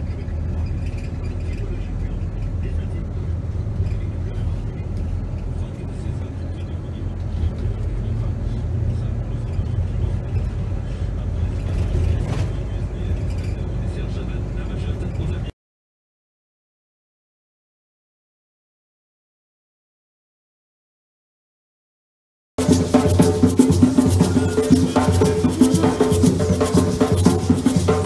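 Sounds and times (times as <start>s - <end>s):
bus engine and road rumble: 0.0s - 15.5s
indistinct voices: 0.0s - 15.5s, 22.6s - 28.0s.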